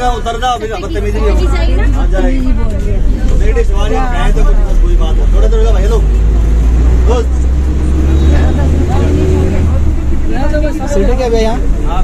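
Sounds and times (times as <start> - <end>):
bus engine rumbling: 0.0 - 12.0
passengers talking: 0.0 - 12.0.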